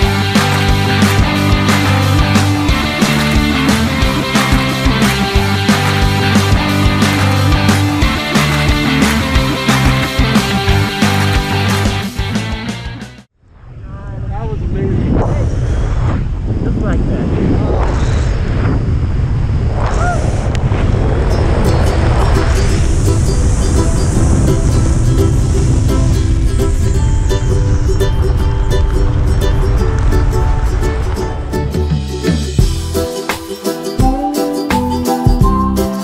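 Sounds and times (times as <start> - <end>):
soundtrack music: 0.0 - 13.3, 21.2 - 36.0
wind buffeting microphone: 13.4 - 32.0.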